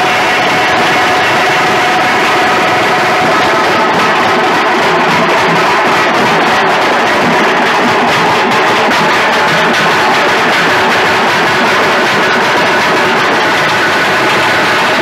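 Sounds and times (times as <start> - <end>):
frame drums beaten with sticks: 0.0 - 15.0.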